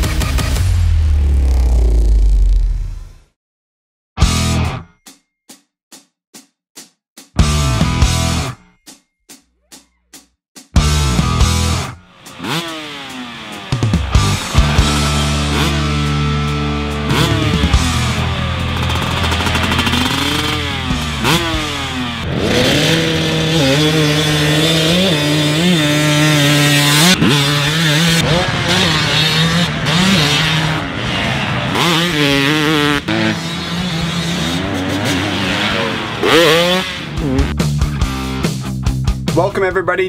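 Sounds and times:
rock music: 0.0 - 1.1, 4.2 - 5.0, 7.4 - 8.6, 10.8 - 40.0
motocross bike engine revving: 10.8 - 38.5.

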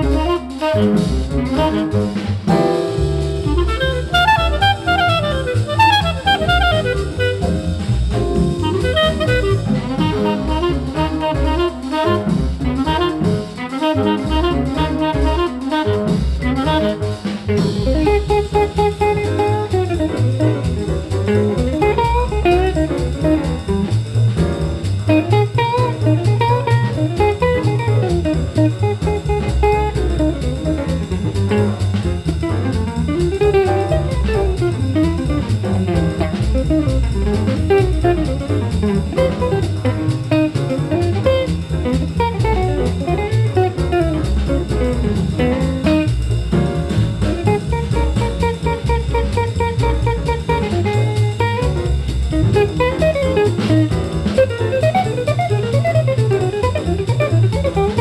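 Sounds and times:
drum kit: 0.0 - 58.0
jazz guitar solo: 0.0 - 58.0.

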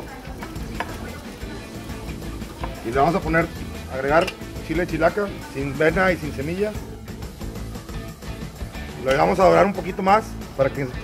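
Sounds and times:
soft background music: 0.0 - 11.0
meat sizzling in hot oil: 0.4 - 10.6.

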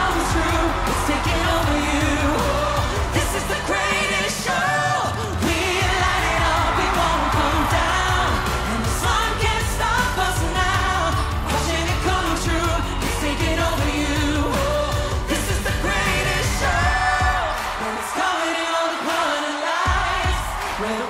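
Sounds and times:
full band backing track: 0.0 - 18.1
man singing: 0.0 - 21.0
woman singing: 0.0 - 21.0.

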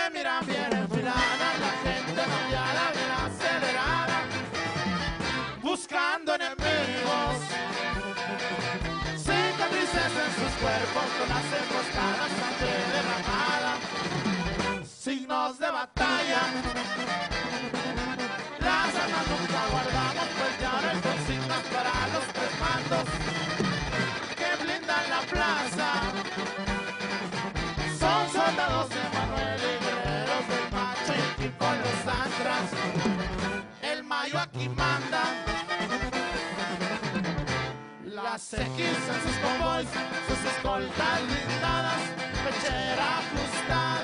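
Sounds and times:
live band playing: 0.4 - 5.7, 6.6 - 15.0, 16.0 - 38.0, 38.6 - 44.0
sousaphone bass line: 0.4 - 5.7, 6.6 - 15.0, 16.0 - 37.9, 38.6 - 44.0
drum kit: 0.5 - 5.6, 6.6 - 14.9, 16.0 - 33.6.

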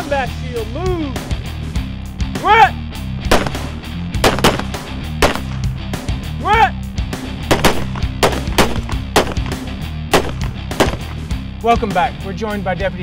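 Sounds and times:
background music with low pulse: 0.0 - 13.0
handgun shots: 3.3 - 5.7, 7.5 - 11.2.

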